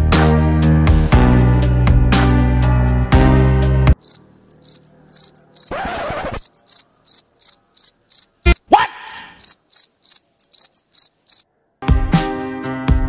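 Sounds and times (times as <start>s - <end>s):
insect chirping: 4.0s - 11.4s.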